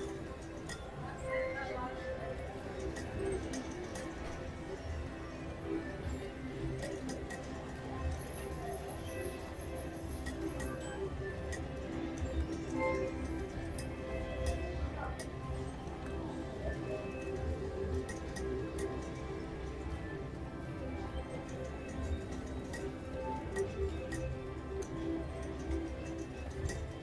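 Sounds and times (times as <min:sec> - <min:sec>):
background music: 0:00.0 - 0:27.0
slot machine reels clicking: 0:06.5 - 0:27.0.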